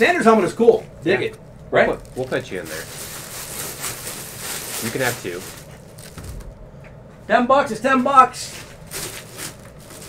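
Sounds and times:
plastic bag crinkling: 1.5 - 6.5, 8.7 - 10.0.

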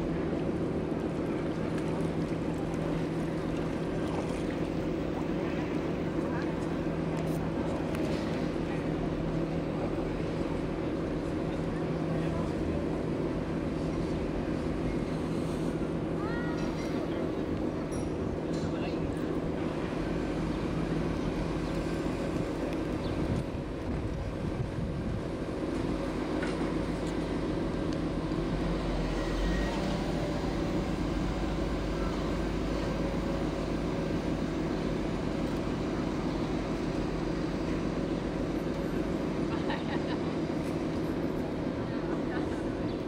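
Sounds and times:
boat engine droning: 0.0 - 43.0.

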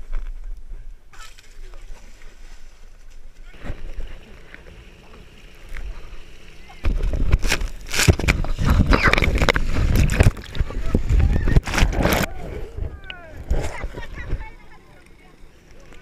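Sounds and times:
water sloshing and hissing: 1.3 - 14.5.

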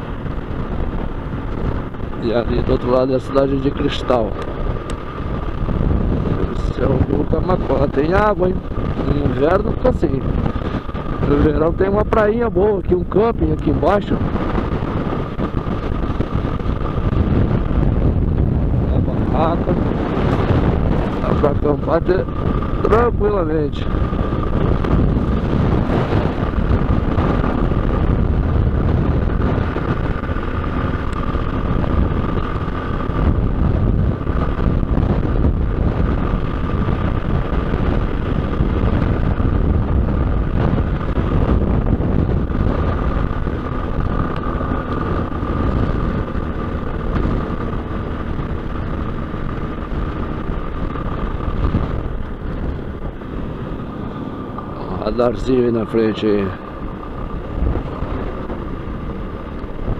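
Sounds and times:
motorcycle engine running: 0.0 - 59.9
steady high whine: 0.0 - 59.9
wind and road noise: 0.0 - 59.9.

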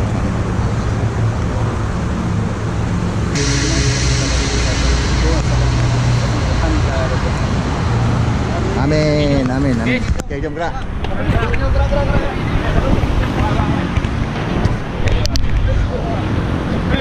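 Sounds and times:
steady low rumble: 3.3 - 10.3
steady hiss: 3.4 - 9.2.

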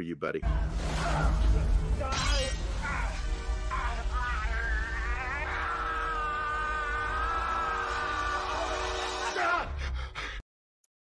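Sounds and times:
high-pitched human scream: 3.7 - 9.7.

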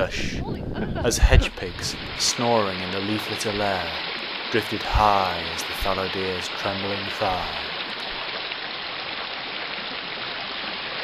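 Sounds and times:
stream running over rocks: 1.1 - 11.0.

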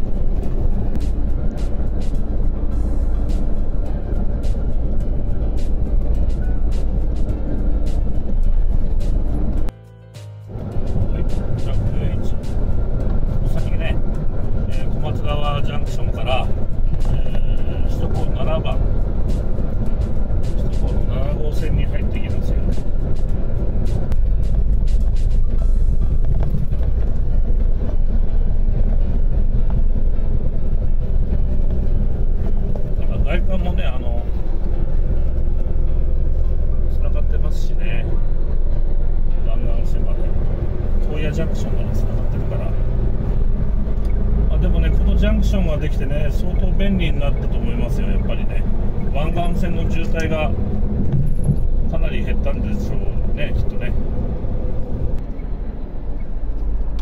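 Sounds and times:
music: 0.0 - 57.0
truck engine and tyres droning: 0.0 - 57.0.

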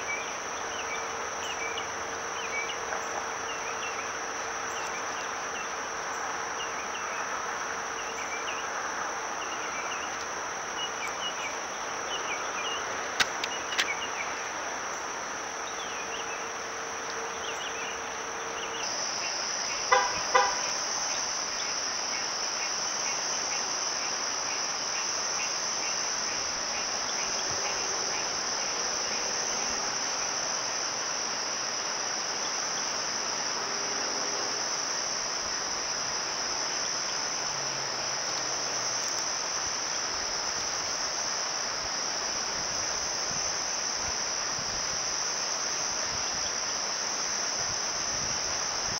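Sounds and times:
insects trilling: 0.0 - 48.9.

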